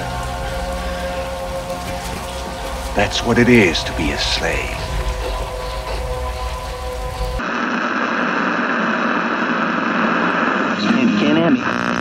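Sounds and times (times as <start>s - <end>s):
low rumble: 0.0s - 7.4s
rain falling: 0.0s - 7.4s
faint steady musical tones: 0.0s - 7.7s
dense wash of noise: 0.0s - 12.0s.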